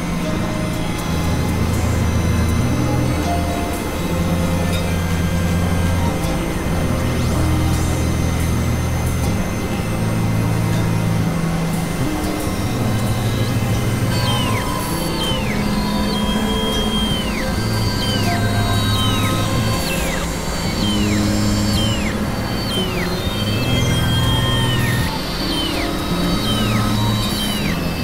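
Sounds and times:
high synth tones bending downward: 0.0s - 28.0s
hissy electronic drone: 0.0s - 28.0s
low synth bass tones: 0.0s - 28.0s.

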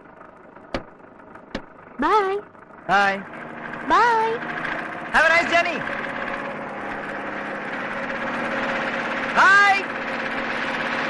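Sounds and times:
bus engine running: 0.0s - 11.0s.

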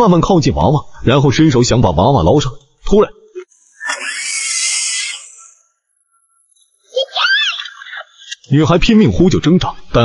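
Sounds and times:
girl screaming: 3.8s - 5.6s, 7.0s - 7.8s.

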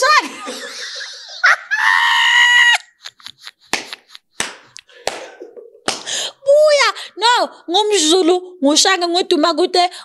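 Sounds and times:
woman shrieking with laughter: 1.2s - 3.5s
sharp smacks: 3.7s - 6.2s.

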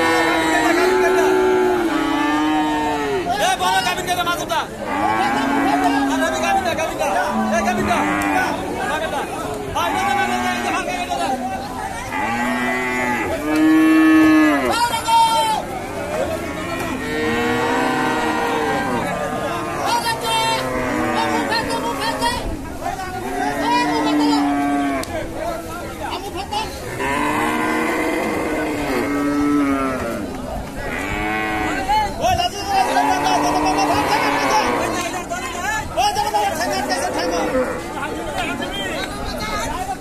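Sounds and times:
cows mooing: 0.0s - 3.3s, 4.7s - 8.8s, 9.8s - 14.7s, 16.5s - 22.5s, 23.2s - 25.2s, 26.8s - 31.9s, 32.8s - 35.1s, 36.6s - 38.0s.

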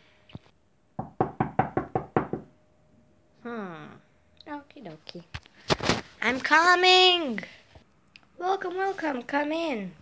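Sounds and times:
knocking on a door: 1.0s - 2.5s.

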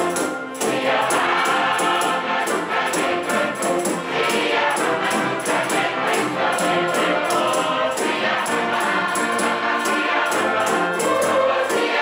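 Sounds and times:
choir singing in harmony: 0.0s - 12.0s
sharp high percussion strokes: 0.0s - 12.0s
string orchestra: 0.0s - 12.0s.

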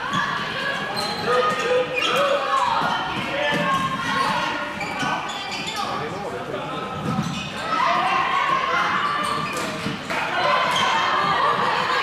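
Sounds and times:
footsteps in sports hall: 0.0s - 12.0s.

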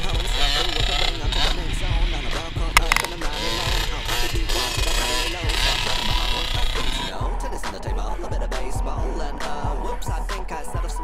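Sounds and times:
rap music with thumping beat: 0.0s - 11.0s
dirt bike engine running: 2.8s - 3.1s.

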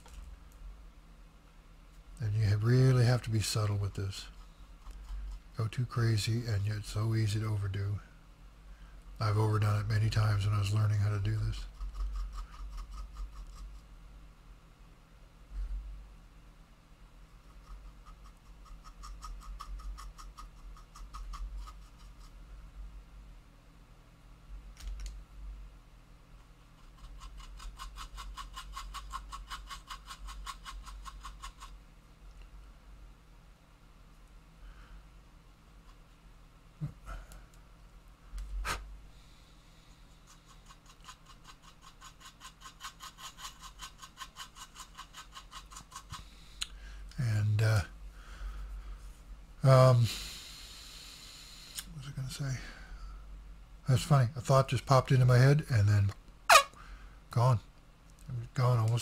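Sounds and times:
faint high whine: 46.3s - 57.7s.

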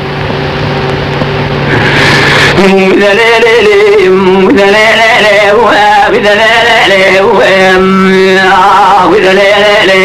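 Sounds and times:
low hum with hiss: 0.0s - 10.0s
person singing: 2.5s - 10.0s.

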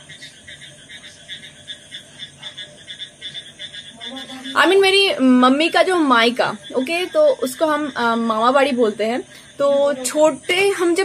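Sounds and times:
frogs croaking: 0.0s - 11.0s.

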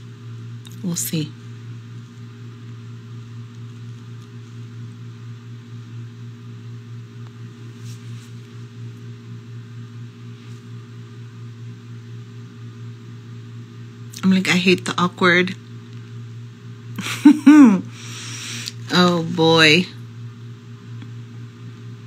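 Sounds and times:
low electrical hum with hiss: 0.0s - 22.0s.

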